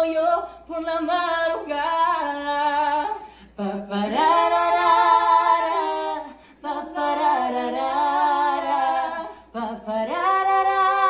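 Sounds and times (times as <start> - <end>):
women singing a cappella: 0.0 - 11.0.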